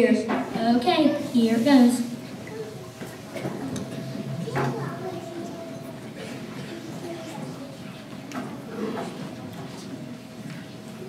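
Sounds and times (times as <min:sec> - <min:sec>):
murmur of children's voices: 0:00.0 - 0:11.0.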